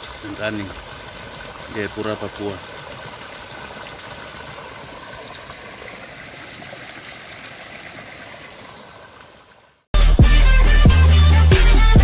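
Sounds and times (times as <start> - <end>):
water jet splashing into pond: 0.0 - 9.9.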